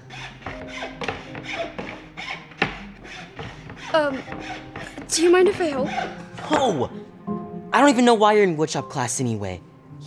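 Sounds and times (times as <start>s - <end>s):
hand saw cutting wood: 0.0s - 6.6s.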